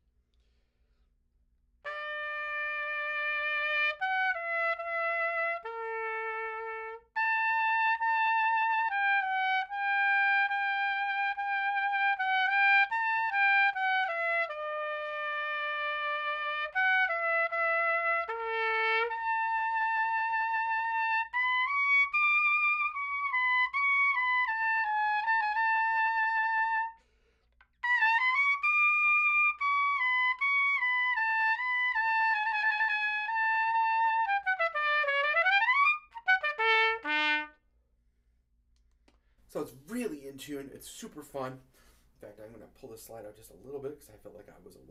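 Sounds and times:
piccolo trumpet playing: 0:01.9 - 0:27.1, 0:27.8 - 0:37.6.

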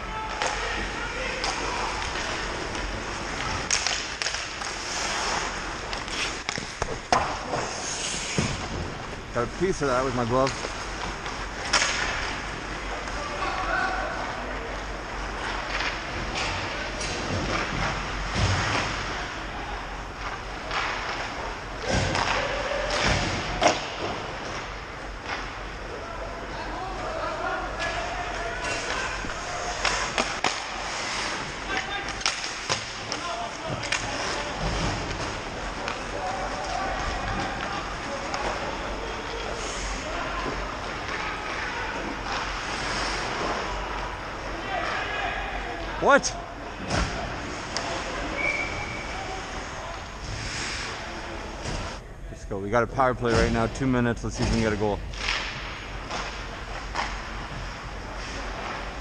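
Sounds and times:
players shouting: 0:00.0 - 0:03.8, 0:25.9 - 0:50.2
steady rink din: 0:00.0 - 0:52.0, 0:53.0 - 0:59.0
sticks and puck hitting boards: 0:01.4 - 0:08.7, 0:10.4 - 0:12.3, 0:20.3 - 0:24.7, 0:28.6 - 0:39.4.

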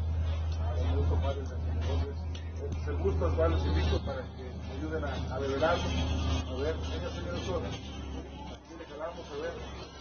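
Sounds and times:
people talking indistinctly: 0:00.1 - 0:10.0.

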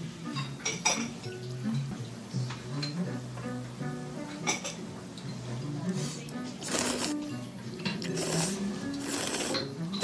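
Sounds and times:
light background music: 0:00.0 - 0:10.0
noodles being slurped: 0:06.6 - 0:07.2, 0:08.0 - 0:09.7.

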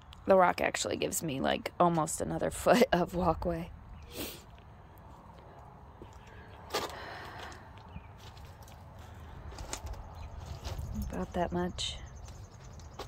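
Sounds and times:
footsteps on concrete and rocks: 0:04.4 - 0:13.0.

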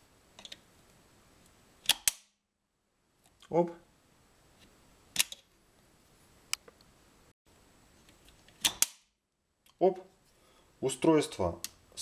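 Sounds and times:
sharp switch clicks: 0:01.8 - 0:02.3, 0:08.6 - 0:09.1.

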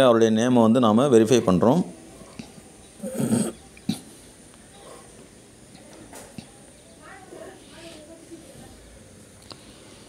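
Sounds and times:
faint steady hiss: 0:00.0 - 0:10.0
person muttering: 0:03.0 - 0:04.1.

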